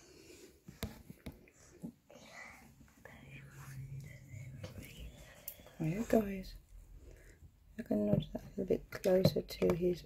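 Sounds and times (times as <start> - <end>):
faint whispered speech: 2.1 - 6.4.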